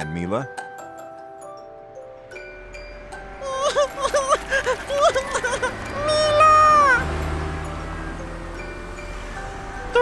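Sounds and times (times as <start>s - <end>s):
soft background music: 0.0s - 10.0s
cartoon creature high cry: 3.4s - 7.0s.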